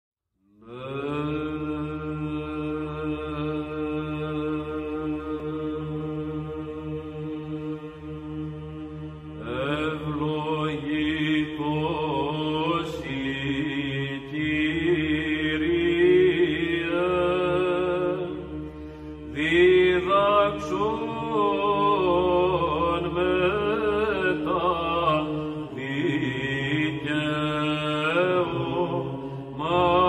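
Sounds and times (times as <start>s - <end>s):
chant-like sustained drone: 0.6s - 30.0s.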